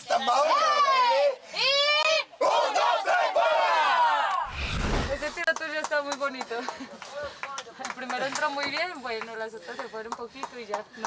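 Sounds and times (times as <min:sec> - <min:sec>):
people yelling and cheering: 0:00.0 - 0:05.4
low rumble: 0:04.5 - 0:05.4.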